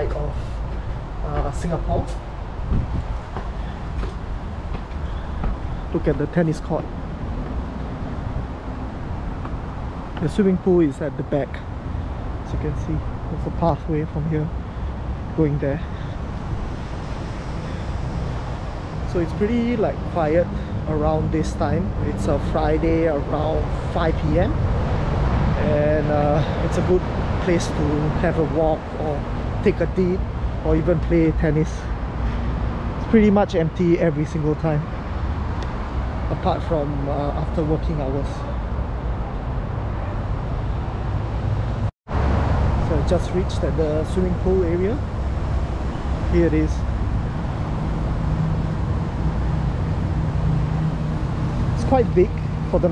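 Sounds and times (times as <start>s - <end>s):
distant traffic hum: 0.0s - 52.9s
wind buffeting microphone: 0.0s - 52.9s.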